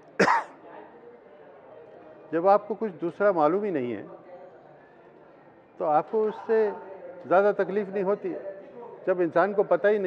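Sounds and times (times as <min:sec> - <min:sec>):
man coughing: 0:00.2 - 0:00.5.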